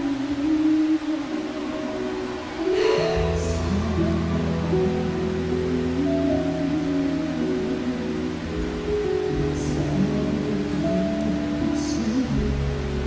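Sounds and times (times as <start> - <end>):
slow live concert music: 0.0 - 13.0.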